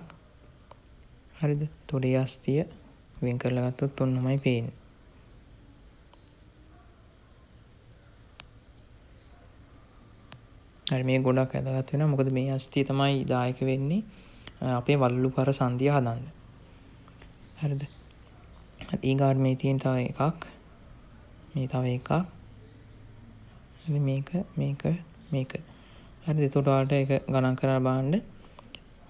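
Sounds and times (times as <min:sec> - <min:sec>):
man speaking: 0:01.4 - 0:04.8, 0:10.9 - 0:16.3, 0:17.6 - 0:18.0, 0:18.8 - 0:20.6, 0:23.8 - 0:28.3.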